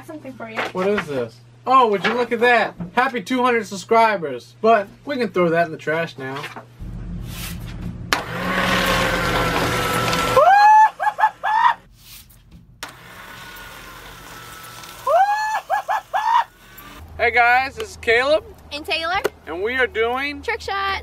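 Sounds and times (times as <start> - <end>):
paper shredder grinding: 8.2 - 11.9, 12.8 - 17.1.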